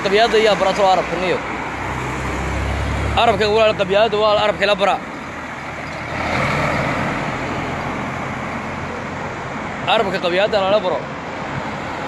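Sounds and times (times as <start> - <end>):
vehicle passing close by: 0.4 - 4.4, 5.3 - 9.8.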